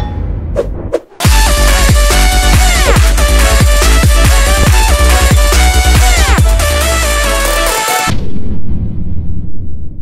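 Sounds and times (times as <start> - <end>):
electronic music: 1.2 - 8.1
deep boom hit: 4.1 - 6.0
low rumble: 8.1 - 10.0.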